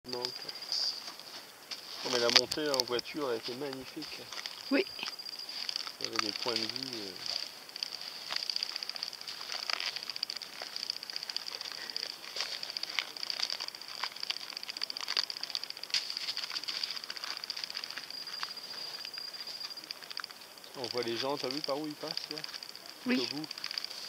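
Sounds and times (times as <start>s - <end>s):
insects trilling: 0.1s - 24.0s.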